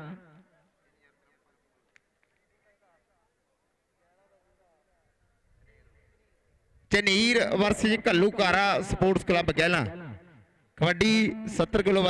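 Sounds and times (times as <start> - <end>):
man speaking over loudspeaker: 6.9 - 12.0.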